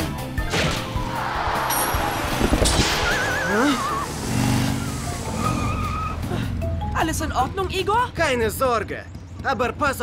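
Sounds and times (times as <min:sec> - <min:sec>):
tyres skidding on dirt: 0:01.2 - 0:09.9
cartoon motorbike engine: 0:02.9 - 0:10.0.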